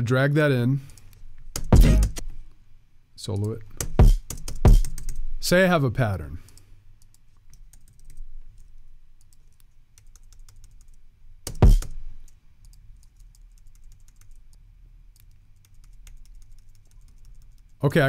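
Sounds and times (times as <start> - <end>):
kick drum hit: 4.0 - 4.8, 11.6 - 11.8.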